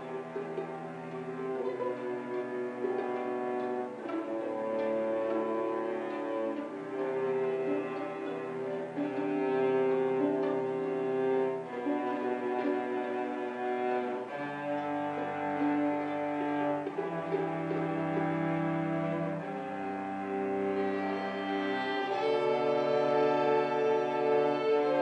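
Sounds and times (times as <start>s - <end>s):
string ensemble playing: 0.0s - 25.0s.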